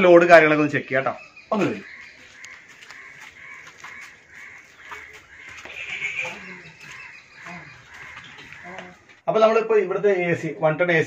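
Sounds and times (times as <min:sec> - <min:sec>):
birds calling: 0:00.0 - 0:09.6.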